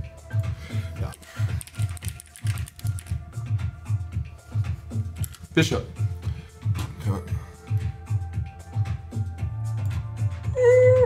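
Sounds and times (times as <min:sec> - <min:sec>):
computer keyboard typing: 0:01.1 - 0:03.2.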